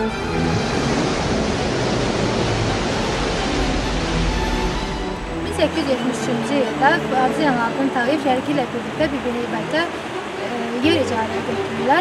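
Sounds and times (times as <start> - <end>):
sea surf waves washing: 0.0 - 12.0.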